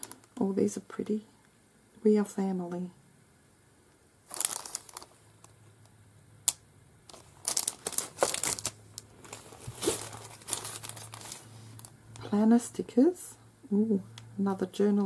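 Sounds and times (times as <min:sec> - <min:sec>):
plastic wrapping crinkling: 0:04.2 - 0:05.5, 0:07.1 - 0:12.0.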